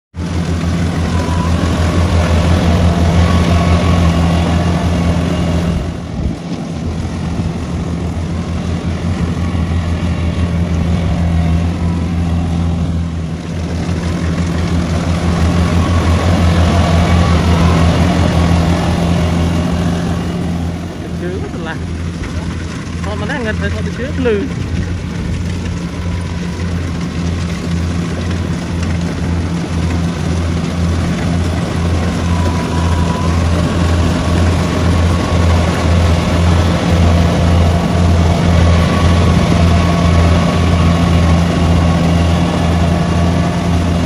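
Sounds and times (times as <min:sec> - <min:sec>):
harvester diesel engine droning: 0:00.1 - 0:44.0.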